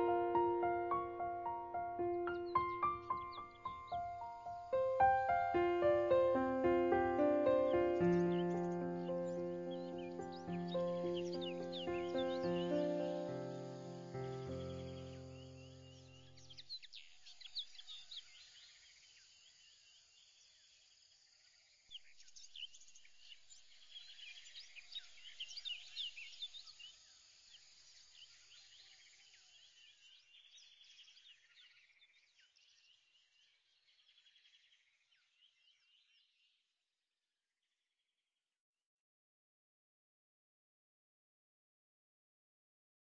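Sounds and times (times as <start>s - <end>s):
music track notes: 0.0s - 15.6s
faint birdsong chirps: 0.0s - 36.7s.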